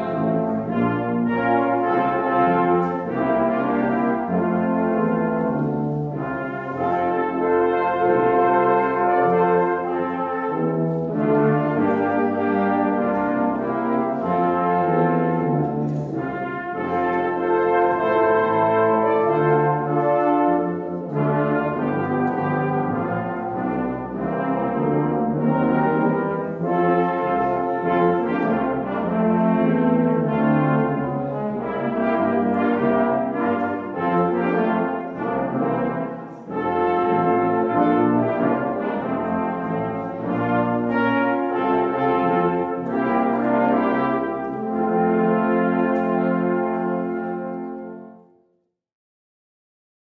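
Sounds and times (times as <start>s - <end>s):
brass ensemble playing hymn: 0.0s - 48.5s.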